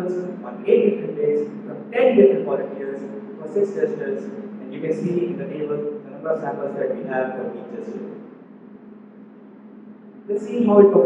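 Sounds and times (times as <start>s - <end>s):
voice tailing off: 0.0s - 8.1s
steady low hum: 0.0s - 11.0s.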